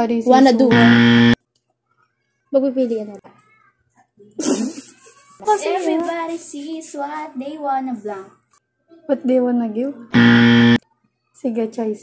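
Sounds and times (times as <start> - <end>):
girl laughing breathily: 4.4 - 5.9
girl speaking: 5.4 - 9.4.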